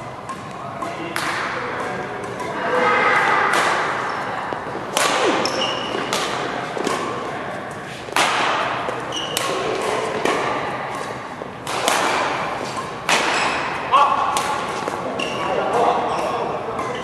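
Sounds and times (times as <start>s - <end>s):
rackets hitting shuttlecock: 0.1s - 2.7s, 3.3s - 17.0s
shoes squeaking on court: 4.0s - 8.1s, 8.8s - 10.2s, 12.4s - 13.9s, 14.7s - 17.0s.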